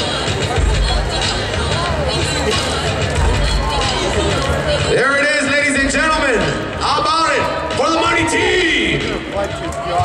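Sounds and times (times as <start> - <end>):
crowd hubbub: 0.0 - 10.0
thumping bass music: 0.4 - 10.0.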